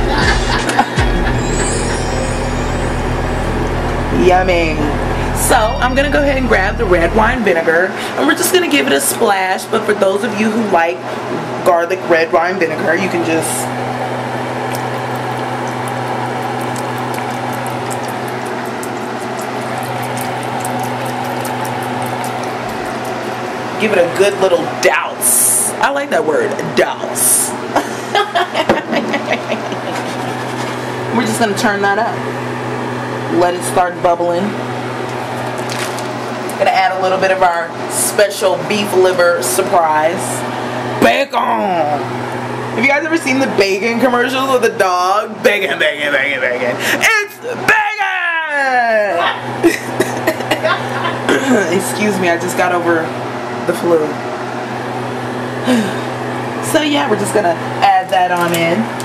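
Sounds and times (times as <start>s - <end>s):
pulsing mechanical hum: 0.0s - 59.0s
faint high whine: 1.0s - 7.4s.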